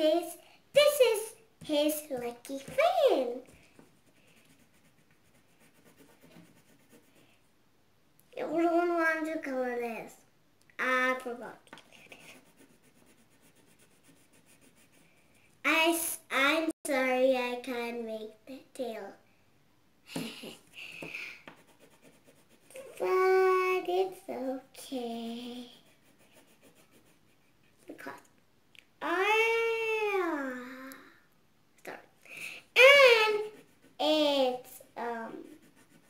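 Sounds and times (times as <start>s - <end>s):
drawing tool scratching on paper: 3.8s - 7.2s, 12.1s - 15.2s, 21.5s - 22.8s, 25.8s - 27.8s, 33.4s - 34.0s, 35.4s - 36.0s.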